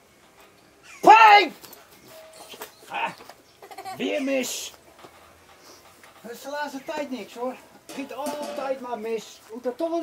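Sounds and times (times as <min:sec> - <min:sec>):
faint outdoor background: 0:00.0 - 0:10.0.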